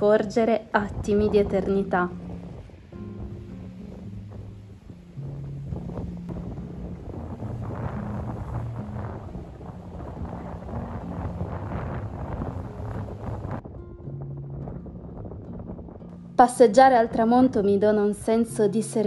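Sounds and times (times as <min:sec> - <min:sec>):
soft background music: 0:00.0 - 0:19.0
wind on microphone: 0:00.0 - 0:19.0
waves washing on rocky shore: 0:05.8 - 0:13.6.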